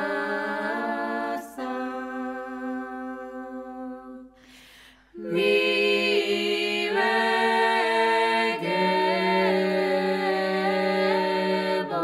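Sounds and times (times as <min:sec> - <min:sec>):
unaccompanied chant singing: 0:00.0 - 0:04.4, 0:05.2 - 0:12.0.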